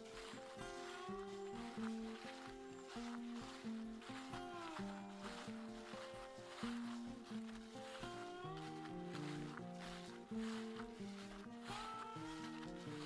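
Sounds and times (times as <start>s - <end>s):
light instrumental music with beat: 0.0s - 13.0s.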